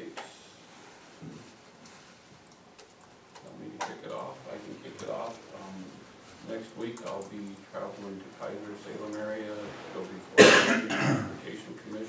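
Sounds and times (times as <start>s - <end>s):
light clicks and taps: 1.2s - 6.0s, 6.6s - 7.6s.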